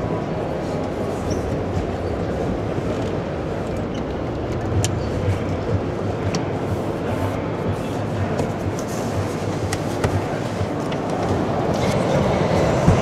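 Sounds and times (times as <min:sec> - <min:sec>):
low rumbling noise: 0:00.0 - 0:13.0.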